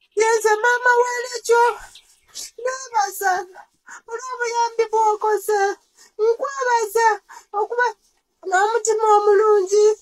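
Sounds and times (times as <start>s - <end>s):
woman speaking tearfully: 0.2s - 10.0s.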